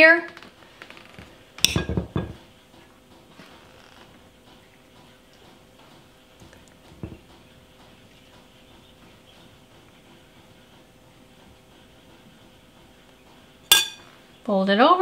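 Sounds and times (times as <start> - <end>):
metal spoon clinking glass bowl: 13.7 - 14.0.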